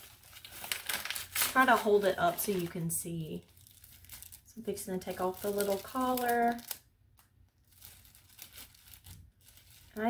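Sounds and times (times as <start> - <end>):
plastic sleeve crinkling: 0.0 - 10.0.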